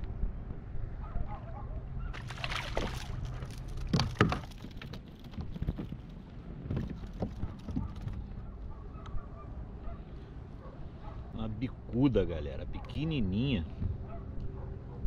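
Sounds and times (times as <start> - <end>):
water splashing: 2.1 - 5.3.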